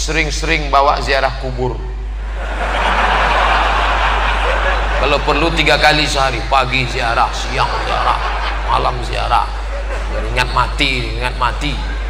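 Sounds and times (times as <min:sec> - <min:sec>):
audience laughing: 0:02.2 - 0:12.0.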